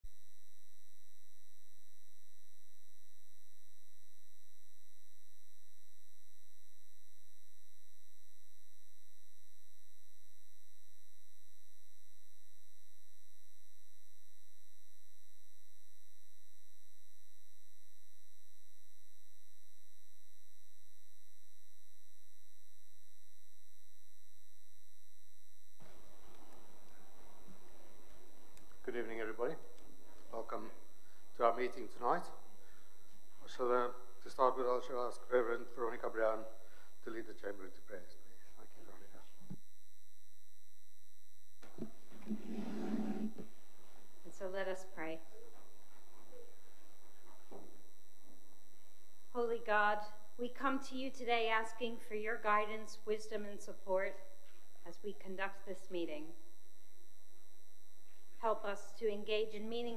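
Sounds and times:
low hum: 12.6s - 50.5s
room sound: 24.9s - 39.8s, 40.4s - 59.9s
steady electronic tone: 41.6s - 44.1s.

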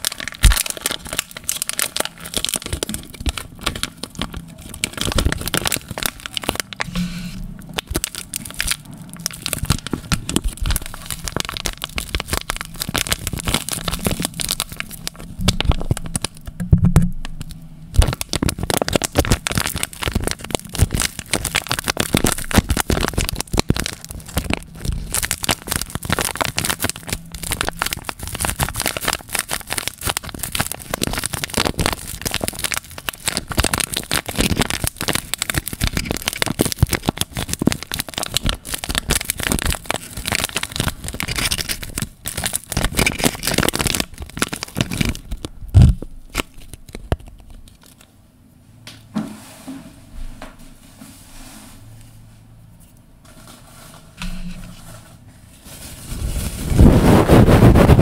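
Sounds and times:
foil sachet crinkling: 0.0s - 16.6s, 17.4s - 48.1s, 53.3s - 58.0s.

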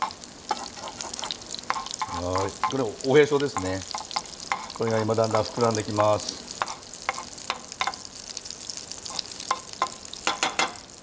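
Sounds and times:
patties sizzling in frying pan: 0.0s - 11.0s.

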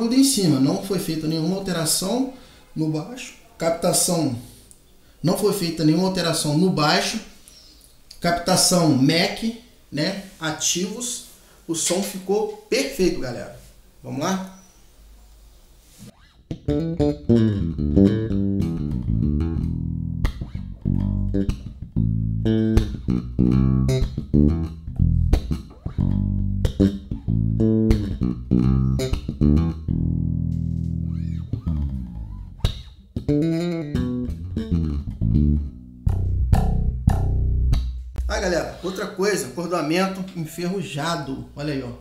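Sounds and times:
electric bass played fingerstyle: 16.2s - 38.6s
bass note sliding down: 16.5s - 38.8s.

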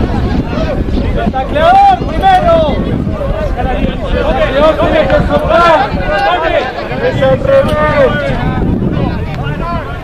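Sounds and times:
wind rumble on microphone: 0.0s - 10.0s
men shouting: 0.5s - 8.6s.

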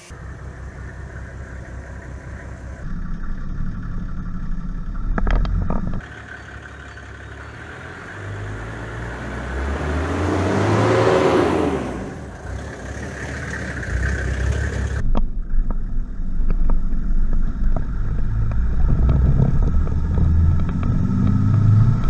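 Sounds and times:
diesel engine pulling away: 0.0s - 15.0s, 16.1s - 22.0s.

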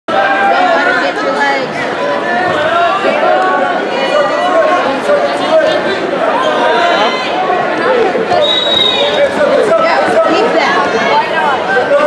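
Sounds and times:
crowd chattering: 0.1s - 12.0s.

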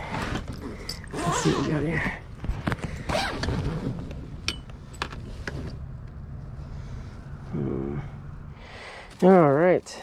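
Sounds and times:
suitcase zipper rasping: 0.1s - 2.0s, 3.0s - 4.2s.

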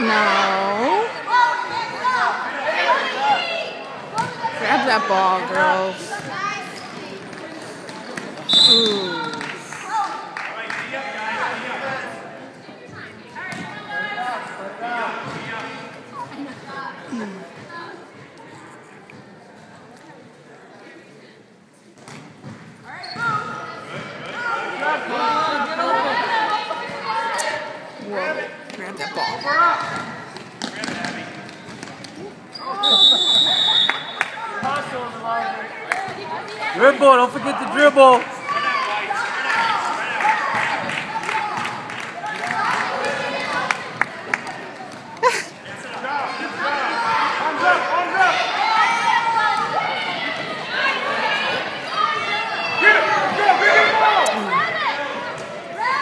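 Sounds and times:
low crowd noise: 0.0s - 56.0s
referee's whistle blast: 8.5s - 9.4s, 32.7s - 34.3s.

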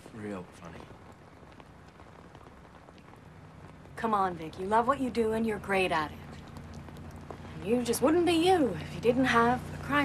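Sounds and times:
light rain falling: 0.0s - 10.0s.

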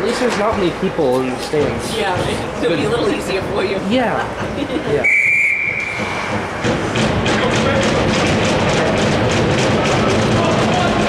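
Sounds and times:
referee's whistle: 5.0s - 6.3s.

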